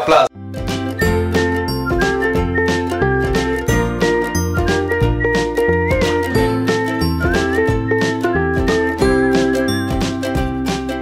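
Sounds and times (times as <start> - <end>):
background music with beat: 0.5 - 11.0.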